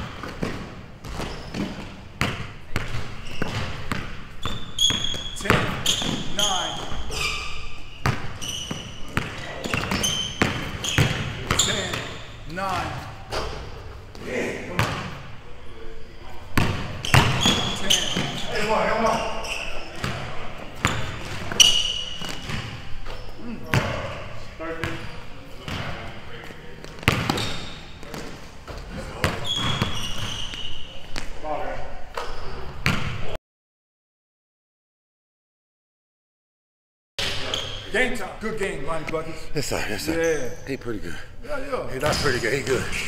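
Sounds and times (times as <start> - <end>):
sneaker squeaks: 0.0 - 33.3, 37.2 - 38.2, 40.1 - 40.9
basketball bouncing on wooden floor: 0.1 - 6.2, 8.0 - 12.0, 27.0 - 30.3
players' voices: 10.8 - 16.7, 17.4 - 20.8, 37.2 - 43.0.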